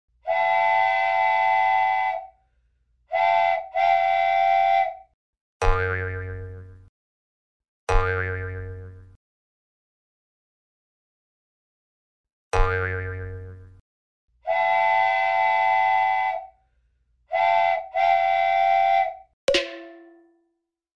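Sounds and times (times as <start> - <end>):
springy boing effects: 5.6 - 6.6, 7.9 - 9.0, 12.6 - 13.5, 19.5 - 20.4.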